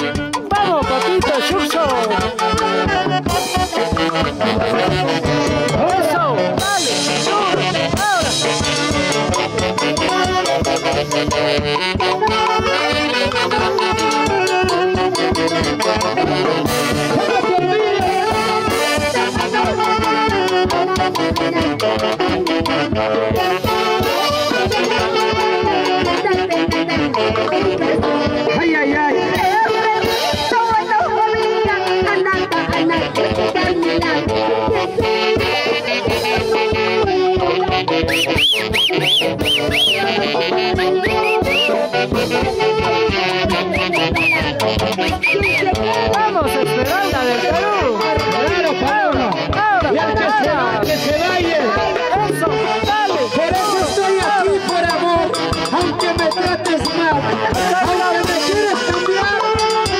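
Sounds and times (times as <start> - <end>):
steady drum beat: 0.0 - 28.5, 32.4 - 59.9
festive band music with horns: 0.0 - 59.9
saxophones playing in harmony: 0.0 - 59.9
quick high whistles: 38.1 - 40.0, 41.0 - 41.8, 43.8 - 44.4, 45.2 - 45.7.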